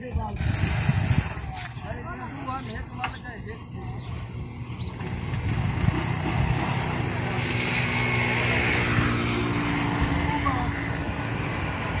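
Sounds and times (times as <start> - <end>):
people talking: 0.0 - 0.5, 1.3 - 4.2, 10.2 - 10.9
vehicle engine running: 0.2 - 8.8.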